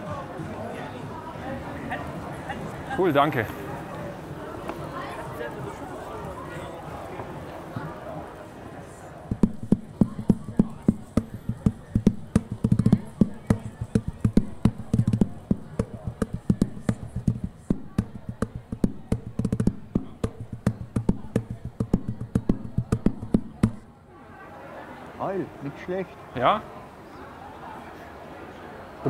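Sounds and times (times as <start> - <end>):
bucket played as hand drum: 9.3 - 23.8.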